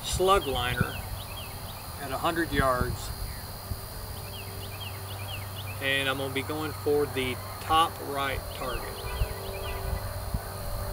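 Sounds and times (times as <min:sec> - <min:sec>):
high insect drone: 0:00.0 - 0:10.9
low steady hum: 0:00.0 - 0:10.9.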